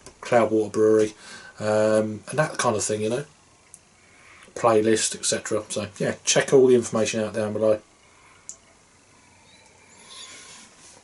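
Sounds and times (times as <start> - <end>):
breath: 1.2 - 1.6, 4.0 - 4.6.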